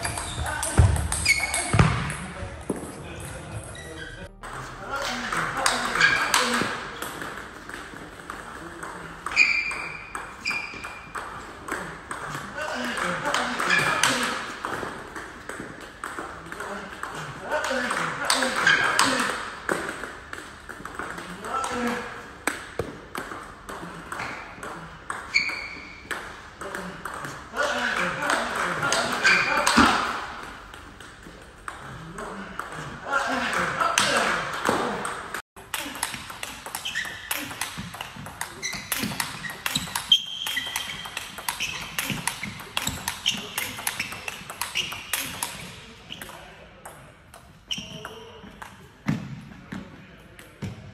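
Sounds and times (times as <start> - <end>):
table tennis balls clicking: 5.2 - 48.9.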